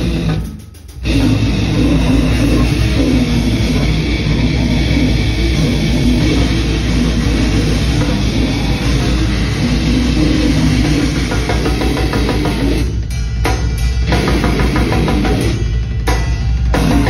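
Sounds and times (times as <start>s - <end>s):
distorted electric guitar: 0.0s - 17.0s
drum kit: 0.0s - 17.0s
heavy metal band playing: 0.0s - 17.0s.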